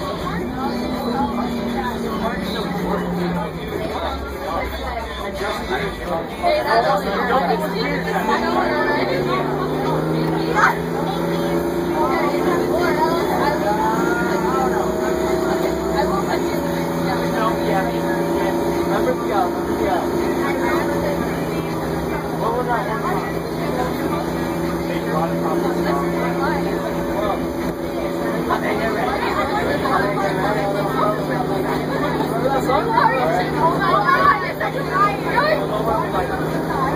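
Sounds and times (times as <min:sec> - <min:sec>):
bus engine droning: 0:00.0 - 0:36.9.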